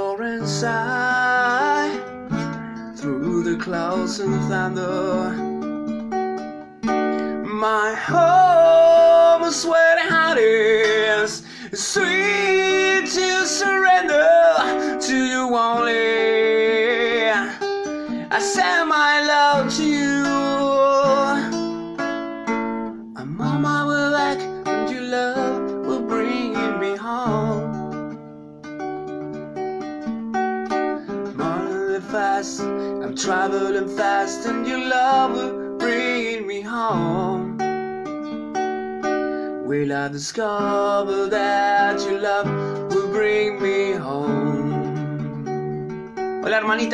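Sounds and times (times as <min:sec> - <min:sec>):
man singing: 0:00.0 - 0:05.6, 0:07.1 - 0:21.8, 0:23.0 - 0:28.0, 0:31.2 - 0:37.7, 0:39.6 - 0:45.2, 0:46.4 - 0:46.9
acoustic guitar strumming: 0:00.0 - 0:46.9.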